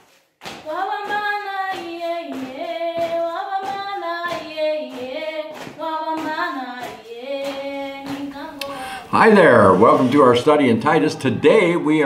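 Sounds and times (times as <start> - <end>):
hand claps on the beat: 0.0 - 8.7
girls singing together: 0.5 - 8.9.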